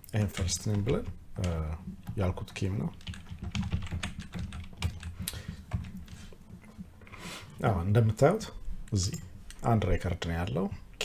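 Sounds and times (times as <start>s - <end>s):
keyboard keystrokes: 2.9s - 5.9s.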